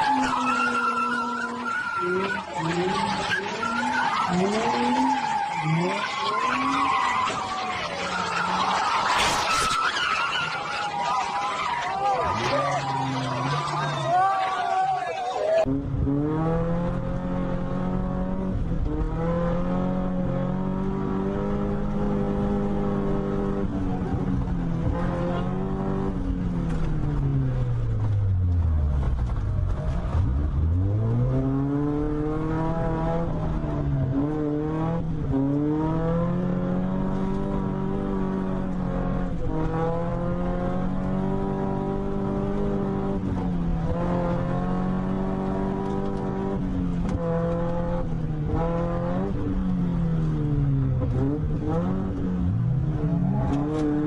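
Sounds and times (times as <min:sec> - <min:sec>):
car engine revving: 0:15.6 - 0:54.0.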